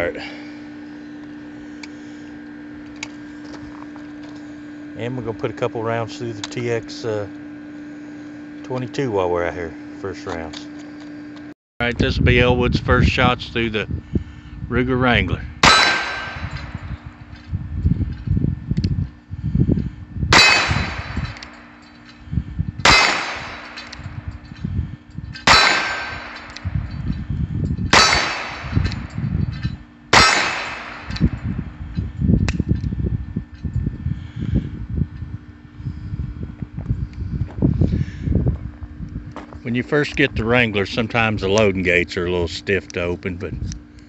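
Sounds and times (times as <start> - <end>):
revolver gunshots: 15.6 - 16.8, 20.3 - 21.6, 22.8 - 24.2, 25.4 - 26.7, 27.9 - 29.1, 30.1 - 31.5
revolver hammer cocking: 15.6 - 16.8, 22.8 - 24.3, 25.4 - 26.7, 27.9 - 31.4.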